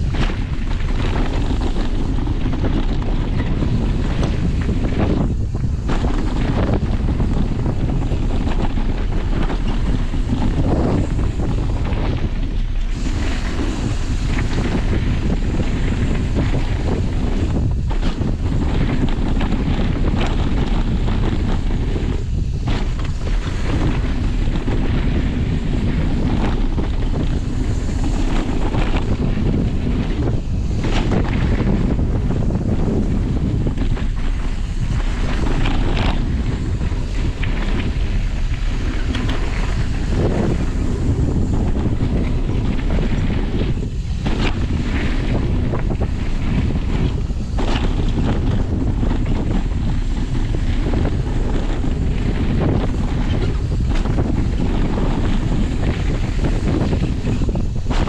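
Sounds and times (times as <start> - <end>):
bike knocks and rattles: 0.0 - 58.0
tyre noise on dirt: 0.0 - 58.0
wind buffeting microphone: 0.0 - 58.0.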